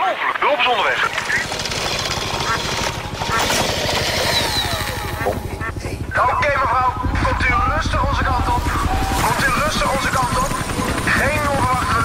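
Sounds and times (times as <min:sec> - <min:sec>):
helicopter rotor beating: 0:00.3 - 0:12.0.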